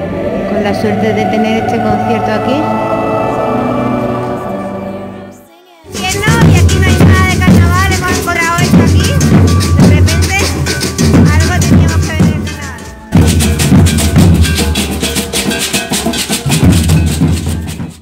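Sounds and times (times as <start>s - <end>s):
wooden bass drums beaten: 5.9s - 18.0s.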